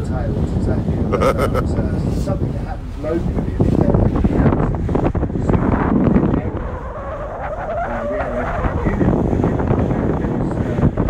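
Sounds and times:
boat engine rumble: 0.0s - 11.0s
wind on microphone: 0.0s - 11.0s.

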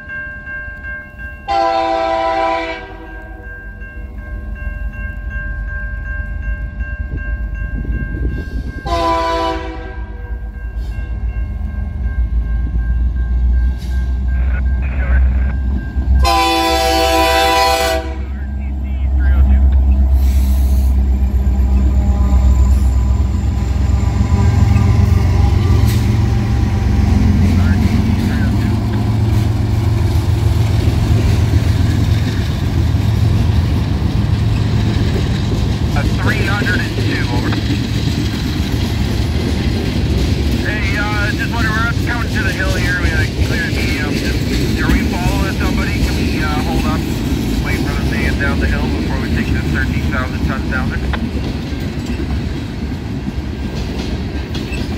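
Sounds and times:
train horn blasts: 1.5s - 3.4s, 8.8s - 10.4s, 16.2s - 28.1s
locomotive engine rumble: 1.5s - 54.9s
freight cars rolling: 20.8s - 54.9s.

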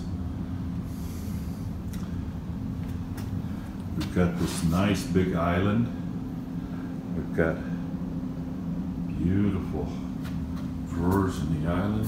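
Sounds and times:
low room hum and rumble: 0.0s - 12.0s.

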